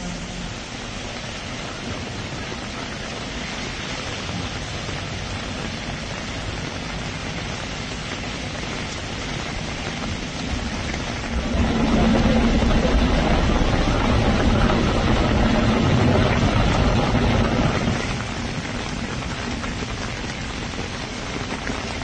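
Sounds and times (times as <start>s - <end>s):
car driving through water: 0.0s - 22.0s
water rushing: 0.0s - 22.0s
engine hum: 3.7s - 22.0s.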